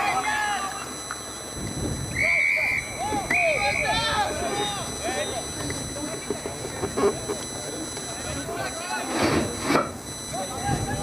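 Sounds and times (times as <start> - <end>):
whistle blown: 1.7 - 5.6.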